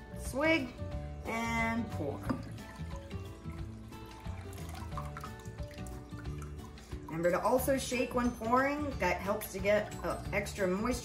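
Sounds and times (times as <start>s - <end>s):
background music with low beat: 0.0s - 11.0s
water trickling into a bowl: 2.0s - 10.9s.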